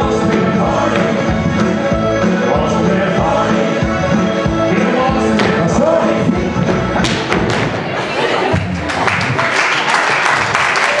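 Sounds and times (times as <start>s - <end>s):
line-dance music: 0.0s - 9.3s
audience voices: 4.7s - 11.0s
audience clapping: 8.6s - 11.0s.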